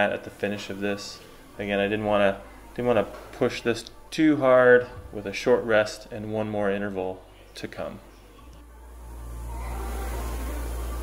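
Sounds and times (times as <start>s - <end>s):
rowing machine fan whooshing: 8.9s - 11.0s.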